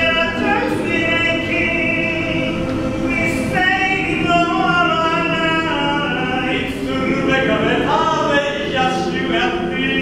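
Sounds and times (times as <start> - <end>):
male choir singing: 0.0 - 10.0.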